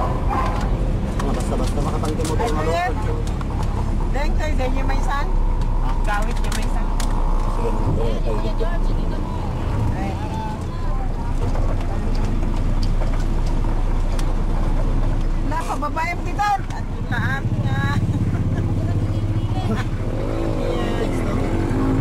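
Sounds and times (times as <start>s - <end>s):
vehicle engine and road rumble: 0.0s - 22.0s
people talking: 1.2s - 3.3s, 15.4s - 21.8s.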